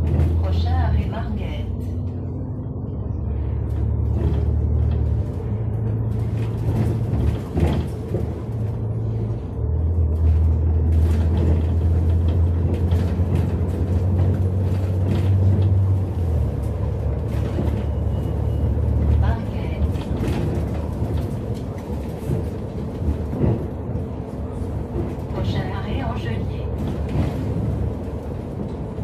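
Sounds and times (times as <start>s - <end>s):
bus engine drone: 0.0s - 29.0s
bodywork rattles and knocks: 3.8s - 19.2s, 19.8s - 25.4s.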